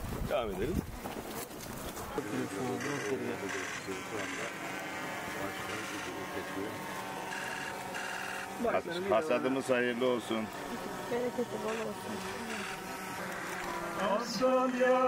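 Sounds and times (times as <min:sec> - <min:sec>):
group of people talking: 0:00.3 - 0:15.0.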